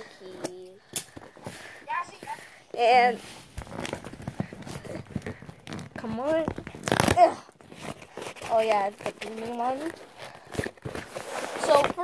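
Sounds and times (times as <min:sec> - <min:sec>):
hands scratching at packing tape: 0:03.2 - 0:12.0.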